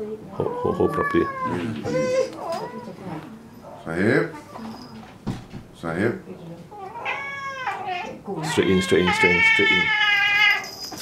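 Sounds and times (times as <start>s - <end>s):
cat meowing: 0.4s - 3.0s, 6.8s - 10.7s.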